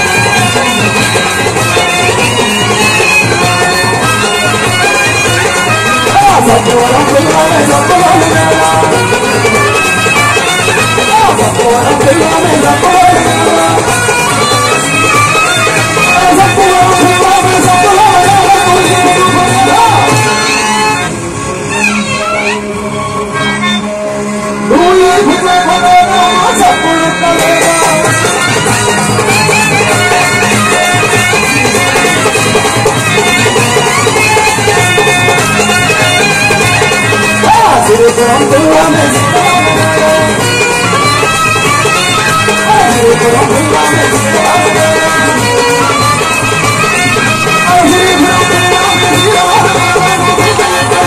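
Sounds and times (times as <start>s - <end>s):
fast steady drum beat: 0.0s - 21.0s, 26.0s - 51.0s
reed wind instrument melody: 0.0s - 51.0s.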